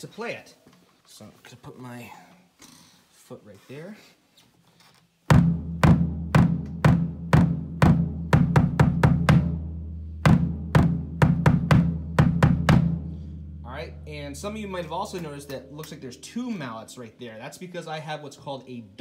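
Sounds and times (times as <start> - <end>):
kick drum strokes: 5.3 - 16.6
low drum boom ringing: 5.3 - 17.0.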